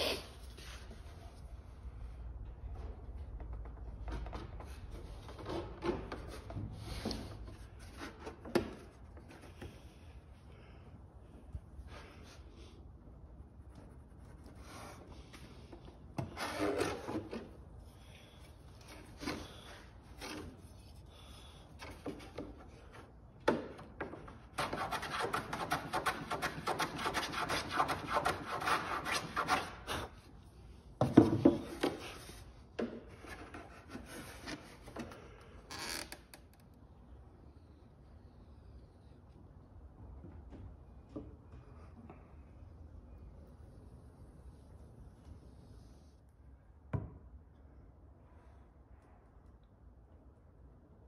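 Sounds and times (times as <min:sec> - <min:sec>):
hand tool scraping wood: 0:14.5 - 0:21.0, 0:24.6 - 0:30.2
hand tool rasping wood: 0:24.6 - 0:30.1.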